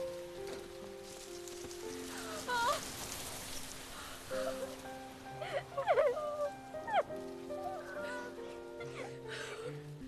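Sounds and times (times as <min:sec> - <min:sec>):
steady rustling hiss: 0:00.0 - 0:10.0.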